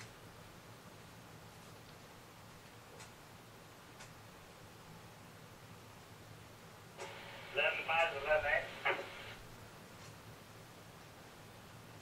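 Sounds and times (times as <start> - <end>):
man speaking: 7.5 - 9.2.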